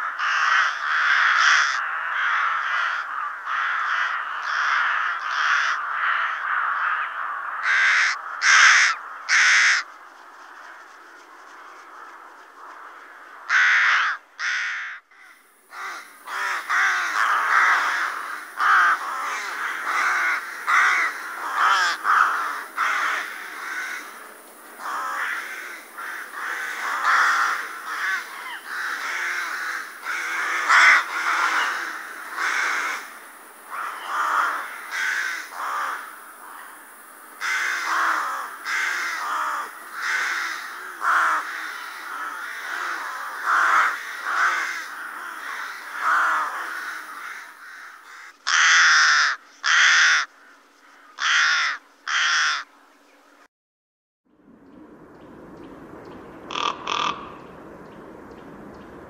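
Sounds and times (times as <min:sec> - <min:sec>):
rooks cawing: 0:00.0 - 0:52.7, 0:56.4 - 0:58.0.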